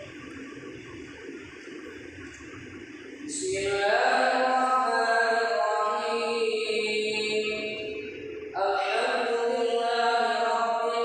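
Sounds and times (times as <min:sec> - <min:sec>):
voice reverberation: 0:02.5 - 0:11.0.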